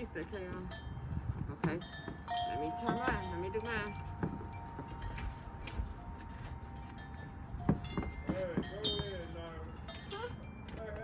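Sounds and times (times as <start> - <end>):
wind rumble on microphone: 0.0 - 6.1.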